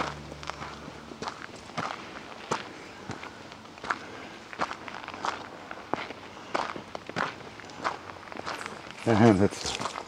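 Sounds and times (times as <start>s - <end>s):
footsteps on dirt trail with leaves: 0.0s - 10.0s.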